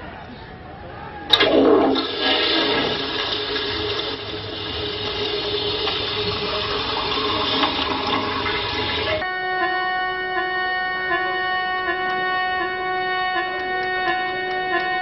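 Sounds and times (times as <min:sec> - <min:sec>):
rushing flushing water: 0:01.3 - 0:09.2.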